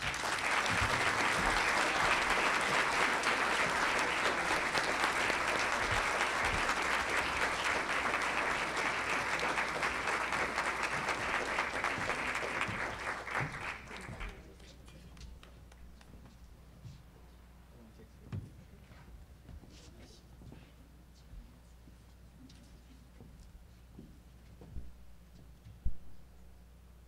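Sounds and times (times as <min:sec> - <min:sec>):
audience clapping: 0:00.0 - 0:16.1.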